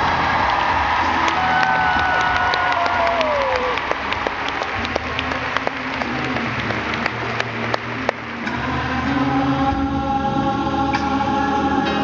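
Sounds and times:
gospel choir singing: 0:04.8 - 0:12.0.

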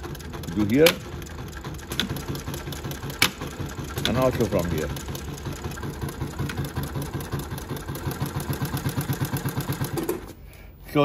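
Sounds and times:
sewing machine stitching: 0:00.0 - 0:10.4.

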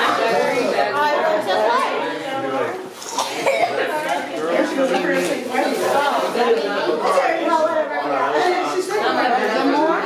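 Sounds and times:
person coughing: 0:03.2 - 0:03.8.

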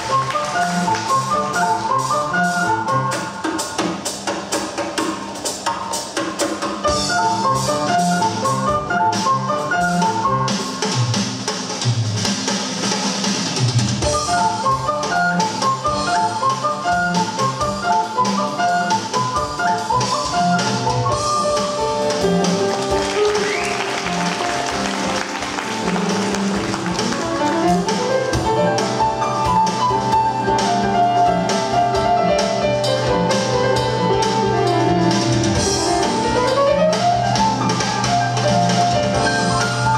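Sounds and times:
ocarina melody: 0:00.0 - 0:03.5, 0:06.9 - 0:10.8, 0:14.0 - 0:32.0
drum kit beat: 0:00.0 - 0:39.9
piano: 0:00.0 - 0:39.9.

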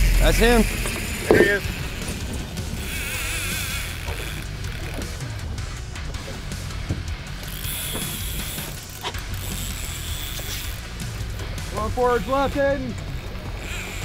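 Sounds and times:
low rumble: 0:00.0 - 0:04.7
fishing reel drag buzzing: 0:00.0 - 0:05.6, 0:07.3 - 0:14.0.

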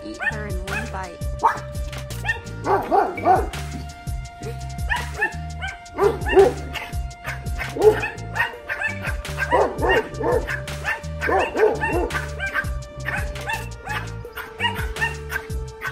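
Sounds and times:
background music with steady beat: 0:00.0 - 0:15.9
dogs barking high yaps: 0:00.2 - 0:15.9.

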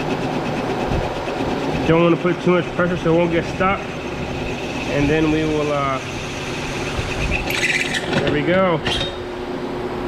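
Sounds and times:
drill press cutting metal: 0:00.0 - 0:09.3.

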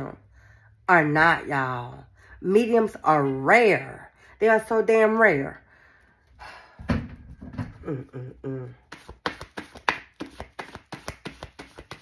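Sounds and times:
cards being shuffled: 0:08.8 - 0:12.0.

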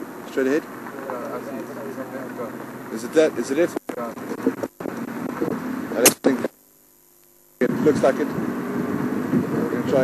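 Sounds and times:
vehicle engine running: 0:00.0 - 0:06.5, 0:07.6 - 0:10.0.

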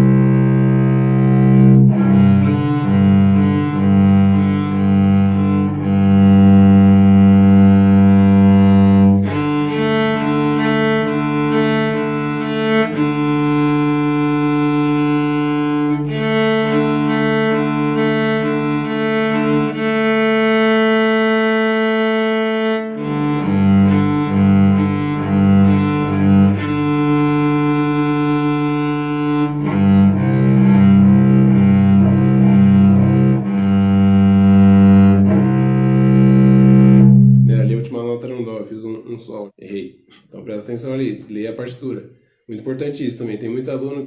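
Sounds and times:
solo cello bowed: 0:00.0 - 0:37.9.

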